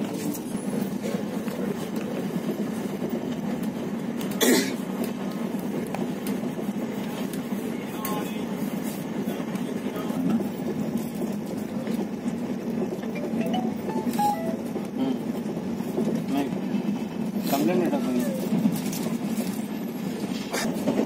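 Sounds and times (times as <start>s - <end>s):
train wheels rolling on rails: 0.0s - 13.6s, 15.2s - 21.0s.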